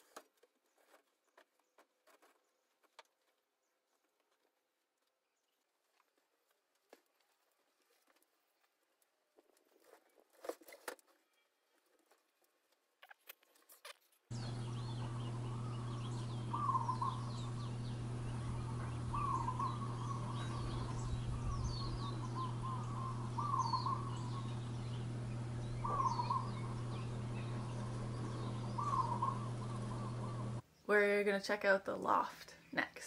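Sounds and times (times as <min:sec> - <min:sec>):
steady low hum: 0:14.3 - 0:30.6
bird calls and chirps: 0:14.3 - 0:30.9.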